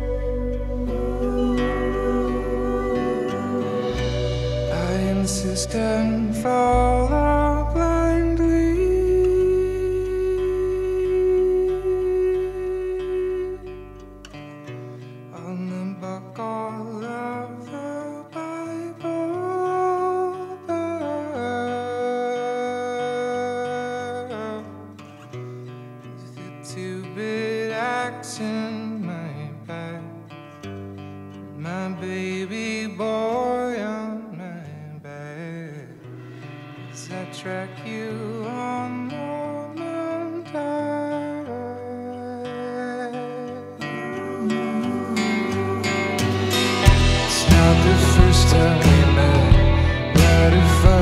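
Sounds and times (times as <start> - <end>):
deep held bass note: 0.0 - 10.1, 46.2 - 51.0
soft sung vocal: 0.0 - 14.1, 31.6 - 51.0
acoustic guitar: 0.0 - 51.0
electric guitar: 0.0 - 51.0.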